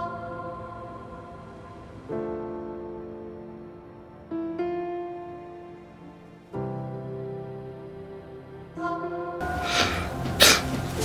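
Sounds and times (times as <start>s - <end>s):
soft background music: 0.0s - 11.0s
sniffling breaths: 9.6s - 10.8s.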